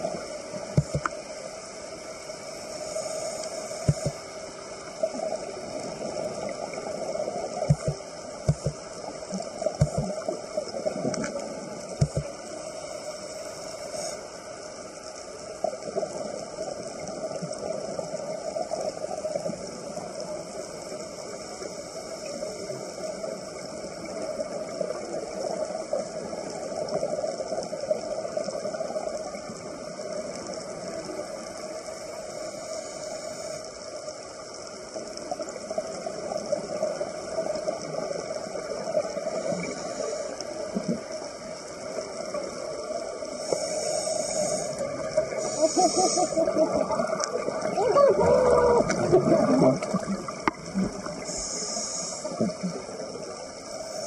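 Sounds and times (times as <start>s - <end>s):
midrange hum: 0.0s - 6.4s, 7.0s - 14.2s
faint hiss: 0.0s - 54.0s
muffled underwater wash: 0.0s - 54.0s.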